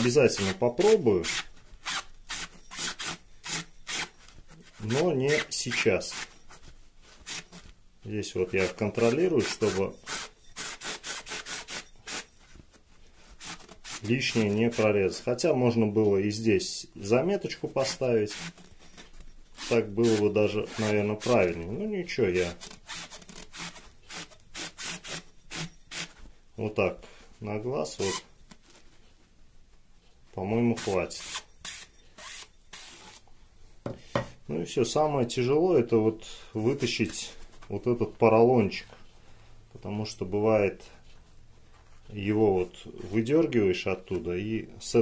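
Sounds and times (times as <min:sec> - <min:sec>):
tube rasping into foam: 0:00.0 - 0:15.9, 0:17.0 - 0:26.3, 0:27.8 - 0:29.1, 0:30.6 - 0:33.3.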